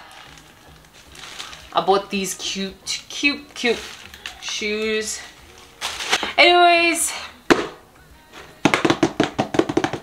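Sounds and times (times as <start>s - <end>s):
rapid sharp percussive taps: 8.6s - 10.0s.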